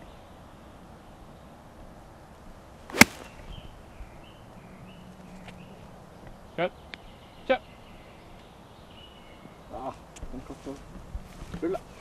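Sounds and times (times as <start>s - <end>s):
golf club swish: 2.9s - 3.4s
golf ball strike crack: 2.9s - 3.5s.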